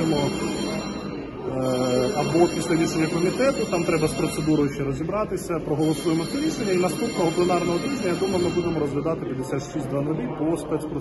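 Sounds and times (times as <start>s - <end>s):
man speaking: 0.0s - 0.6s, 1.4s - 11.0s.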